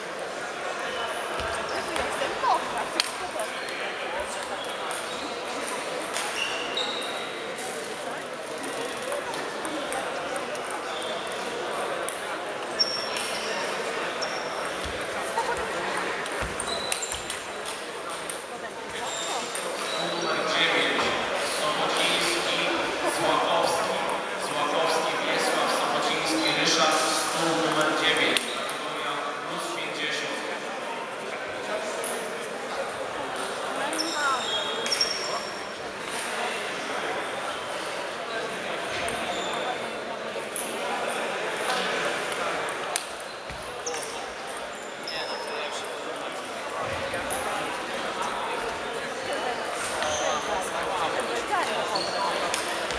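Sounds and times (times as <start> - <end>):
chatter in a sports hall: 0.0 - 52.9
murmur of voices: 0.0 - 52.9.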